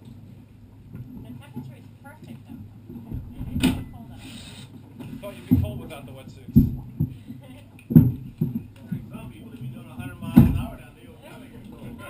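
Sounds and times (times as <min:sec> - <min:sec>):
low steady rumble: 0:00.0 - 0:12.0
short hiss: 0:04.2 - 0:04.7
thump: 0:10.3 - 0:10.7.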